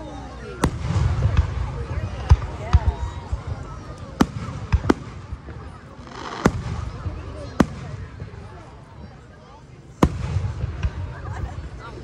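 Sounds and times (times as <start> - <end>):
fireworks bangs: 0.5 - 8.8, 10.0 - 11.8.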